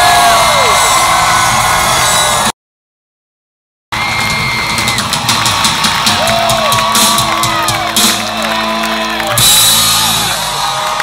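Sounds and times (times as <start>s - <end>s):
crowd whooping and cheering: 0.0s - 2.5s, 3.9s - 11.0s
drums and cymbals: 4.0s - 11.0s
live rock band playing: 4.8s - 11.0s.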